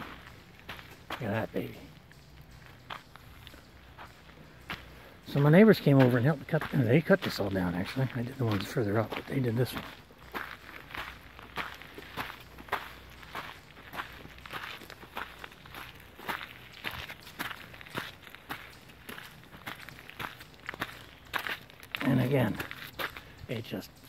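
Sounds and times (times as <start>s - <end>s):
footsteps crunching dry leaves: 0.0s - 24.0s.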